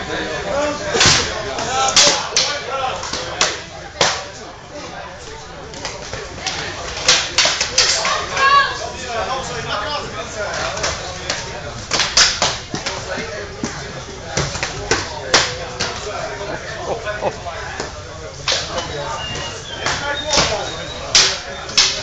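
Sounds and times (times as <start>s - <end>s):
sticks clacking together: 21.1s - 22.0s.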